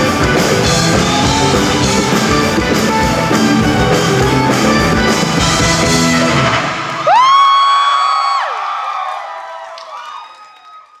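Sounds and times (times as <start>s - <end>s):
live rock band playing: 0.0s - 7.2s
loud high whoop: 7.0s - 11.0s.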